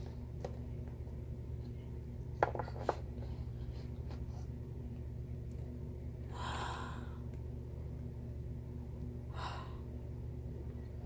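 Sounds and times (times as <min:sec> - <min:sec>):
low steady hum: 0:00.0 - 0:11.0
person breathing in: 0:06.3 - 0:07.3.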